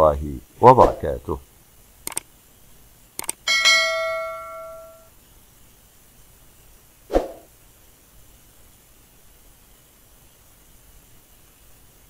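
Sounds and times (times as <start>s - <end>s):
bell ding: 3.5s - 5.1s.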